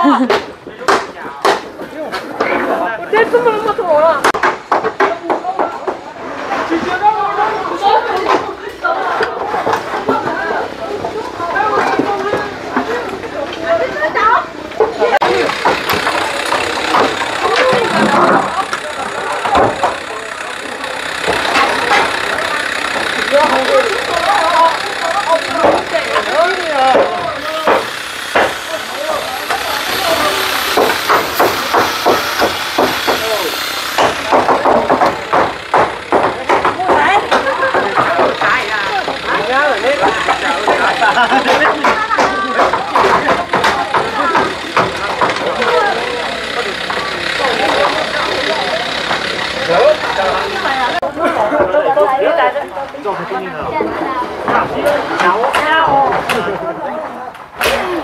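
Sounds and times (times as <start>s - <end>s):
people talking and calling: 0.0s - 58.0s
roofing sheets and timber clattering: 14.8s - 52.5s.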